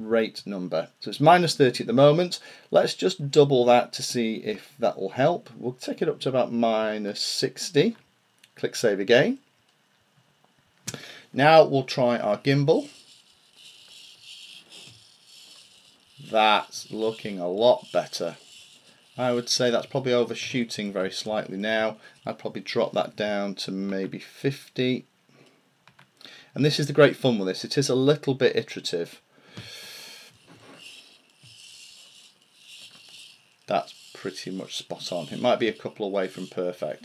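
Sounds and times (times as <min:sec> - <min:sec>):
servo whirring: 0:12.8 - 0:20.5, 0:30.3 - 0:37.0.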